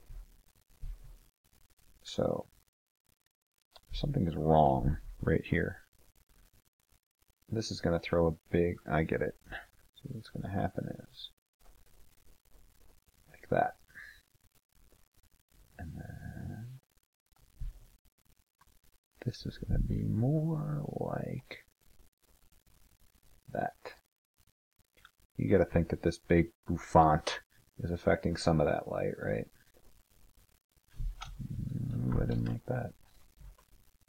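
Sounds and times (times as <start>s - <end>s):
man speaking: 3.9s - 5.8s, 7.6s - 11.3s, 19.2s - 21.6s, 23.5s - 23.9s, 25.4s - 29.5s, 31.4s - 33.0s
low voice-like growl: 15.8s - 16.8s, 31.4s - 32.9s.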